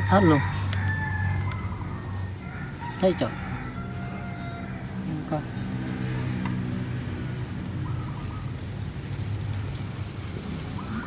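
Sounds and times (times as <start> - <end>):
rooster crowing: 0.0 - 5.1.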